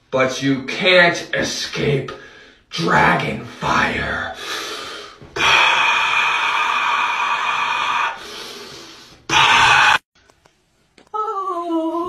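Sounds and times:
forceful breathy rush: 4.4s - 10.0s.

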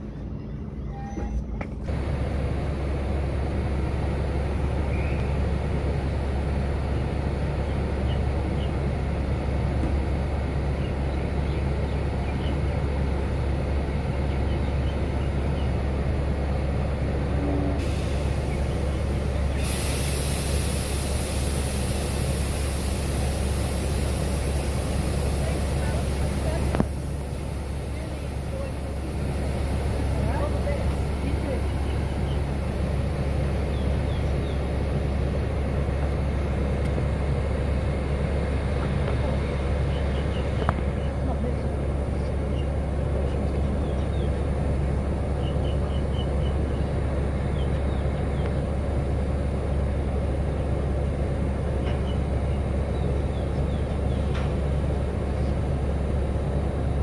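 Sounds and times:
train low hum: 0.0s - 57.0s
compressed air hissing: 17.8s - 30.1s.

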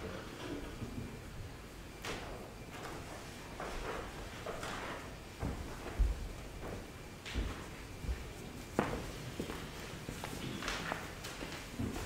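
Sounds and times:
soft footsteps walking away: 2.6s - 12.0s.

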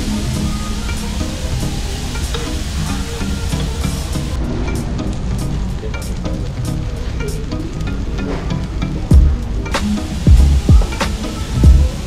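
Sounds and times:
meat sizzling on a griddle: 0.0s - 4.3s
background music: 0.0s - 12.0s.

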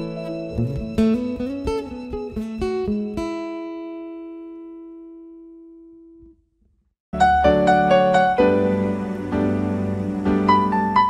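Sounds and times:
acoustic guitar chord ringing: 0.0s - 6.3s
acoustic guitar plucked notes: 0.0s - 6.3s.

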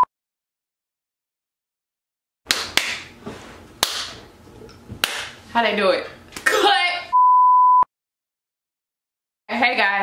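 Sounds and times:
steady test-tone beep: 7.1s - 7.9s.

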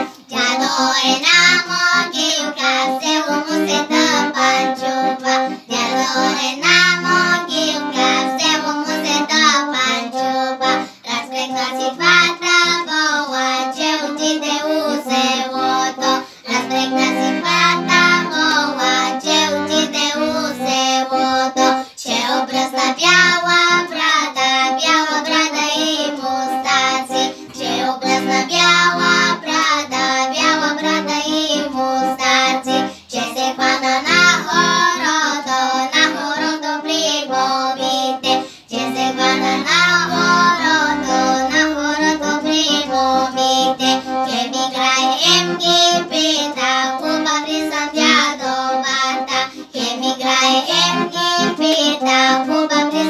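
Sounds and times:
girls singing folk song: 0.0s - 53.0s
instrumental accompaniment: 0.0s - 53.0s.

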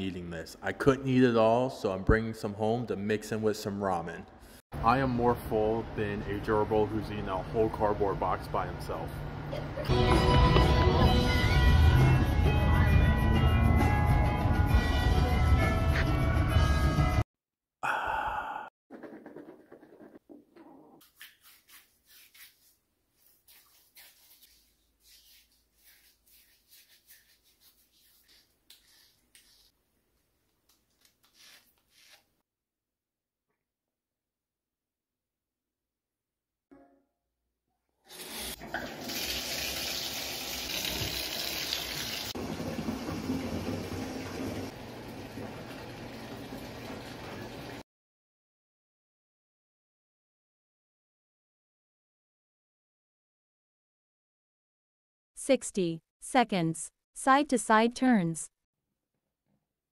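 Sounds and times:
hand rubbing shaving lather: 21.0s - 29.8s, 30.8s - 32.3s
faucet water pouring into tub: 38.1s - 47.8s.

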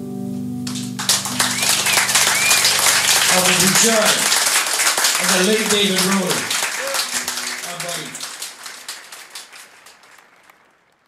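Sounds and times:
audience applause: 0.7s - 11.0s.

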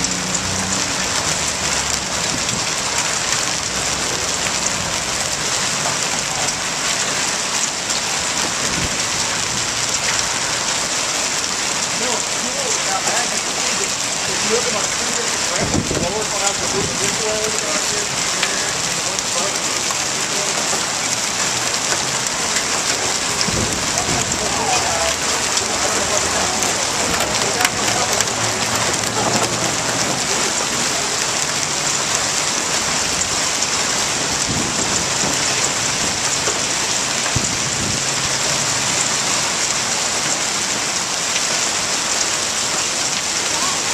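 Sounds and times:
rain and hail on pavement: 0.0s - 43.9s.

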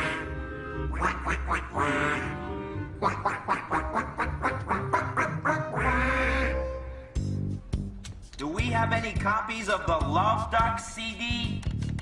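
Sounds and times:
cartoon duck quacks: 0.0s - 0.3s, 1.0s - 2.4s, 3.0s - 6.7s
bright music with steady bass: 4.6s - 12.0s.

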